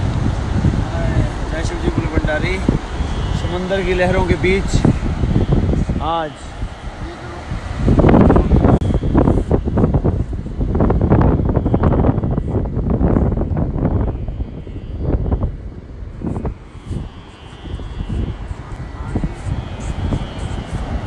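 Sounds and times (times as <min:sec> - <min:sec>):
sea surf: 0:00.0 - 0:12.2, 0:14.0 - 0:21.0
wind buffeting microphone: 0:00.0 - 0:21.0.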